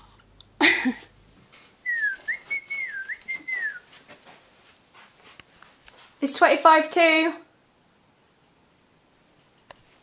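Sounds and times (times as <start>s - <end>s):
person whistling a tune: 1.9s - 3.9s.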